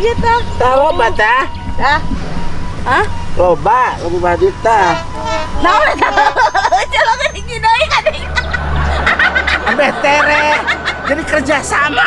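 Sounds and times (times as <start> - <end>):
steady low hum: 0.0 - 11.9
voices exclaiming and talking: 0.0 - 12.0.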